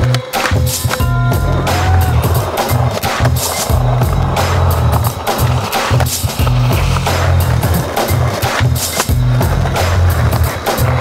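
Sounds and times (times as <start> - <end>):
music with heavy pulsing bass: 0.0 - 11.0
skateboard rolling on asphalt: 0.0 - 11.0.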